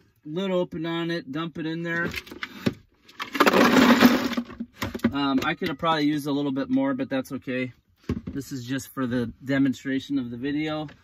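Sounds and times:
ice cubes clattering into cooler: 0:03.1 - 0:05.2.

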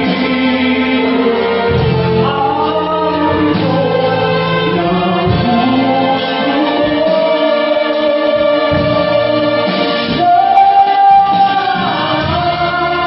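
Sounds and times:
concert band playing ballad: 0:00.0 - 0:13.0
man singing into microphone: 0:00.0 - 0:13.0.

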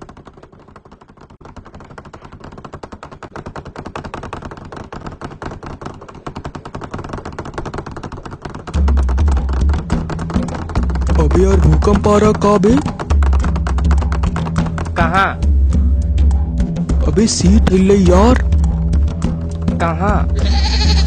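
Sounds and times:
desk and bench rattling: 0:00.0 - 0:21.0
bass-heavy music: 0:08.8 - 0:21.0.

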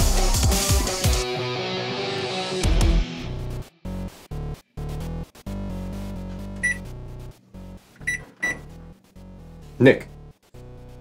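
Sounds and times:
background music: 0:00.0 - 0:11.0
microwave keypad beeping: 0:06.6 - 0:06.9, 0:08.0 - 0:08.8.

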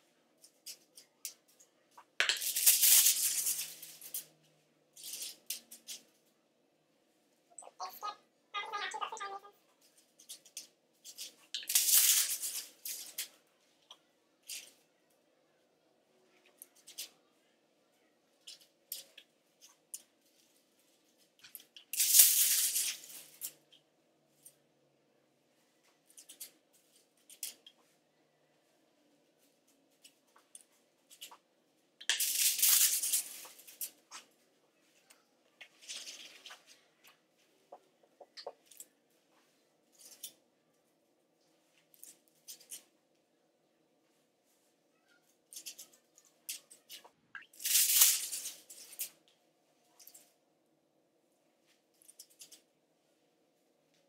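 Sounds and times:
foil crinkling: 0:32.1 - 0:33.9.

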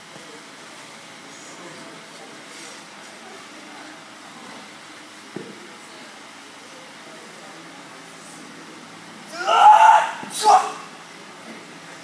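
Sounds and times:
room noise in large space: 0:00.0 - 0:12.0.

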